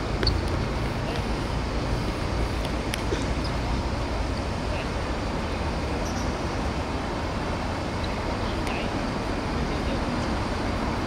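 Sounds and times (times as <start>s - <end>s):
outdoor background rumble: 0.0s - 11.0s.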